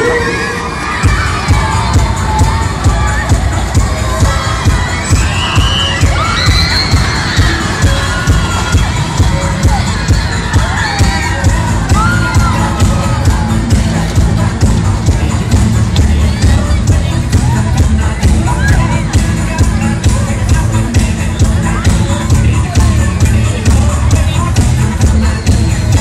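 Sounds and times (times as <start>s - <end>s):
riders screaming and shouting: 0.0s - 14.8s
loud fairground music: 0.0s - 26.0s.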